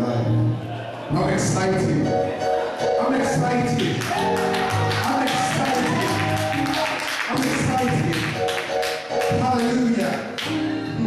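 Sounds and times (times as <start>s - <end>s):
electronic keyboard chords: 0.0s - 11.0s.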